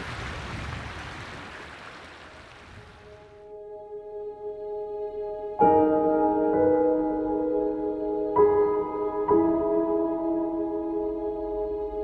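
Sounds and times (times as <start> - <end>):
stream water running over rocks: 0.0 - 3.2.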